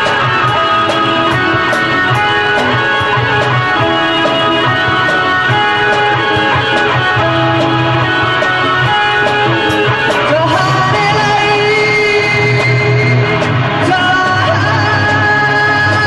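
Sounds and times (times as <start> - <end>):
bass guitar: 0.0 - 16.0
drum kit with cymbal strokes: 0.0 - 16.0
electric guitar held notes: 0.0 - 16.0.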